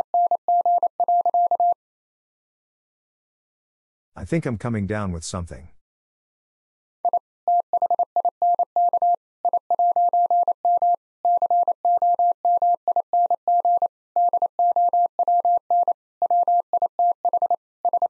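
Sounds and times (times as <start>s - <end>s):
morse code tone: 0.0s - 1.8s, 7.1s - 18.0s.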